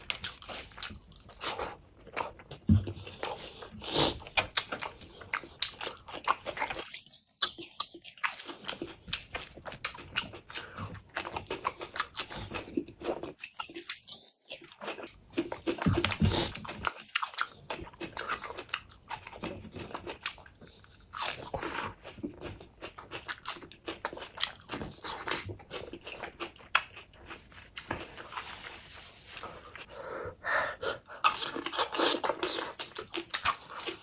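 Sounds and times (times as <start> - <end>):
chewing and crunching food: 0.0 - 29.9, 31.0 - 34.0.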